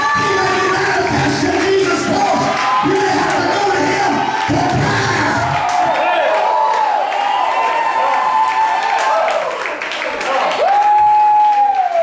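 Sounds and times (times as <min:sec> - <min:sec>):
loud music: 0:00.0 - 0:05.8
congregation shouting in praise: 0:00.0 - 0:12.0.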